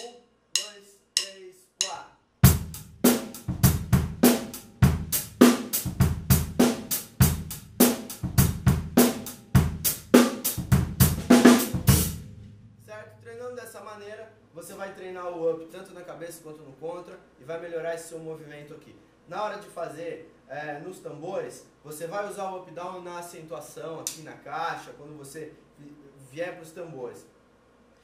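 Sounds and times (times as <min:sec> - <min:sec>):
drumstick count-in clicks: 0:00.0 - 0:02.1, 0:24.0 - 0:24.2
drum kit groove: 0:00.0 - 0:13.1.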